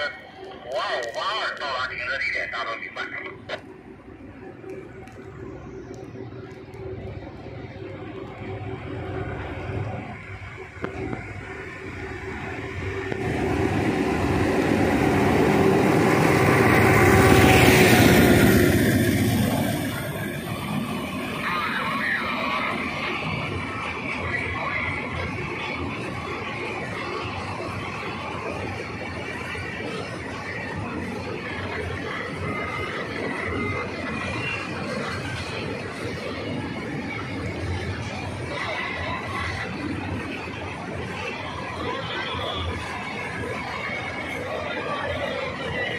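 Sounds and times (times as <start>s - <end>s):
freight train passing: 0.0s - 45.9s.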